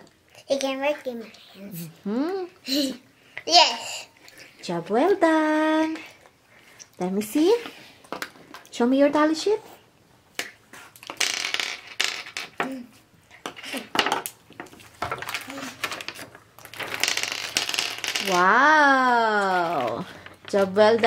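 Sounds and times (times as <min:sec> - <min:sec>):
paper and wrapper crinkling: 0:13.6 - 0:17.6.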